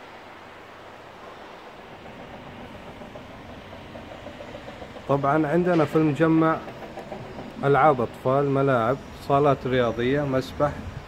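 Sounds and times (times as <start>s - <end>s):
outdoor hiss and hum: 0.0s - 11.0s.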